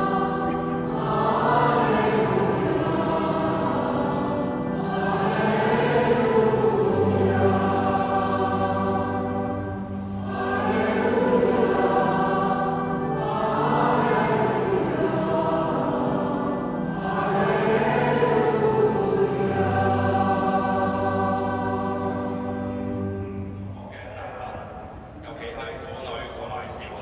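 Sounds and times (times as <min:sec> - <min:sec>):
choir singing a slow hymn: 0:00.0 - 0:24.1.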